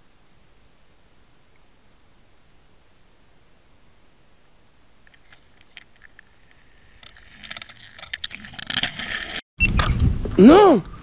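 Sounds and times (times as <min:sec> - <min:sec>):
underwater clicking and crunching: 0:05.0 - 0:09.4.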